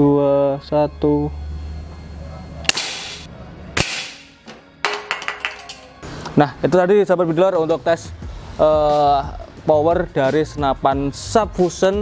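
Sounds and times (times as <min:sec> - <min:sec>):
air rifle shot crack: 0:02.7 - 0:04.4.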